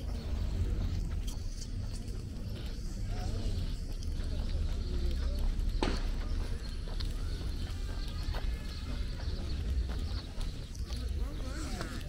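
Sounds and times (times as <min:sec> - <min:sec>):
faint distant voices: 0:00.0 - 0:12.0
footsteps on paved path: 0:00.0 - 0:12.0
low rumble: 0:00.0 - 0:12.0.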